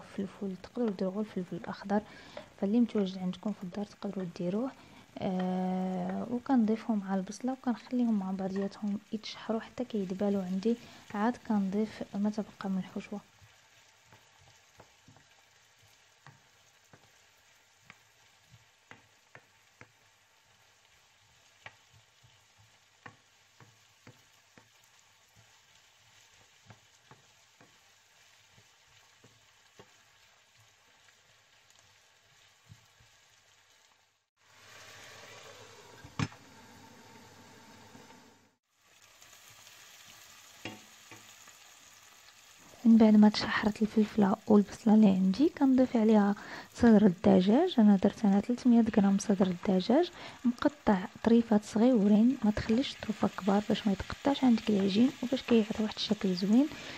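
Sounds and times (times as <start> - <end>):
vegetables sizzling in oil: 0.0 - 56.9
wooden spoon tapping and scraping: 8.4 - 8.9, 12.9 - 20.1, 21.6 - 27.9, 28.5 - 30.0.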